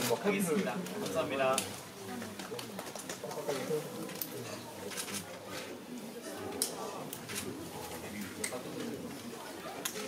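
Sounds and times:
murmuring voices: 0.0s - 10.0s.

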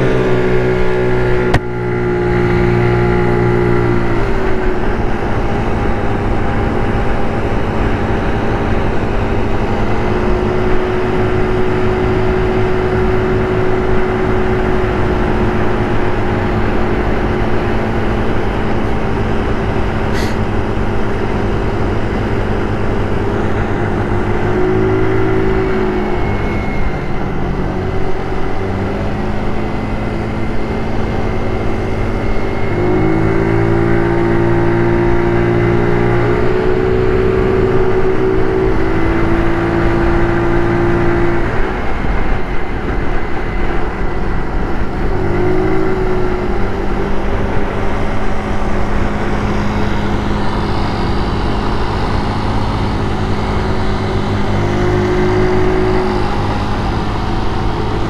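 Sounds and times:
scooter engine running: 0.0s - 58.0s.

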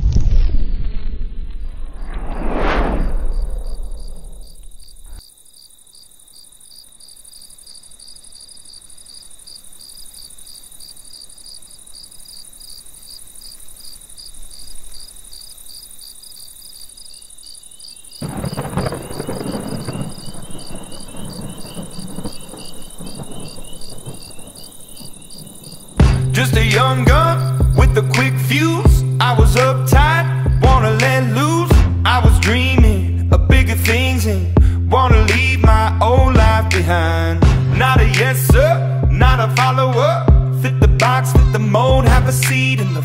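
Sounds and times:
whoosh: 0.0s - 5.2s
insects chirping: 2.9s - 31.6s.

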